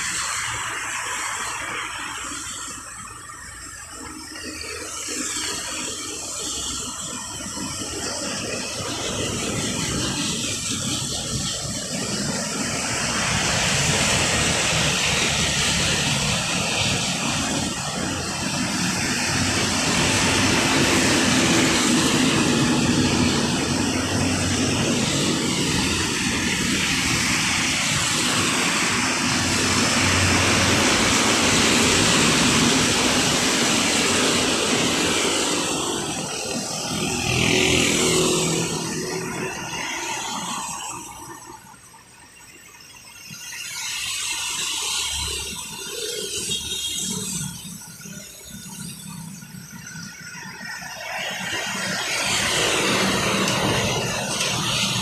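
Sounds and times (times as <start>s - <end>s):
road traffic passing: 0.0s - 55.0s.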